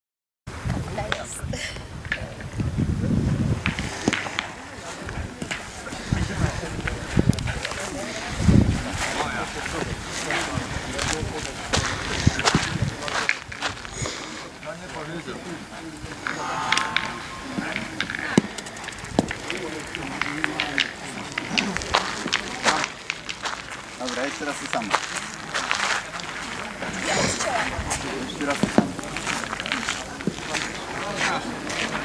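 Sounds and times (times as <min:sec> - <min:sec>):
chatter of players: 0:00.8 - 0:32.0.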